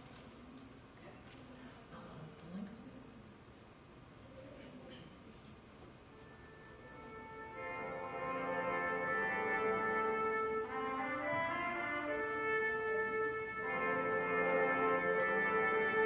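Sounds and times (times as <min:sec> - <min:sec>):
orchestral music with brass: 0:06.3 - 0:16.0.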